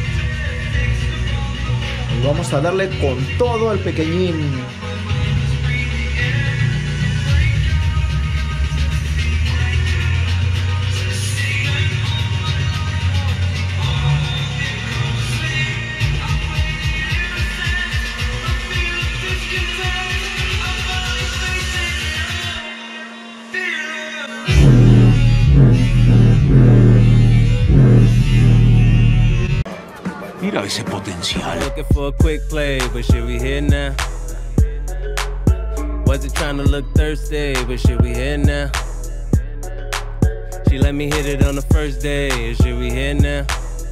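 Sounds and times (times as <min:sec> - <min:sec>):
bass-heavy music through subwoofer: 0:00.0 - 0:22.6, 0:24.5 - 0:29.7, 0:31.4 - 0:43.9.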